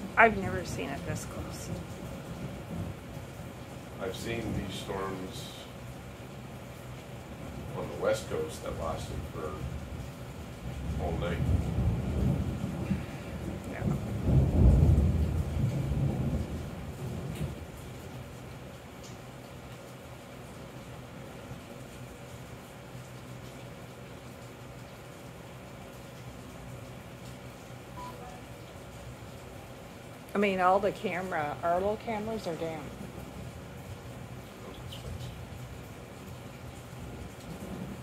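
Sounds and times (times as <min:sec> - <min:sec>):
thunder rumbling: 0:00.0 - 0:06.2, 0:07.2 - 0:18.3, 0:30.5 - 0:38.0
steady rain: 0:00.0 - 0:38.0.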